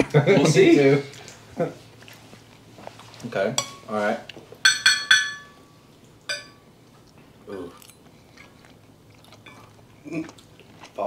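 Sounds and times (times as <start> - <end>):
faint eating sounds: 0.0 - 4.6, 5.5 - 11.0
fork clinking on plate: 4.6 - 5.6, 6.3 - 6.6.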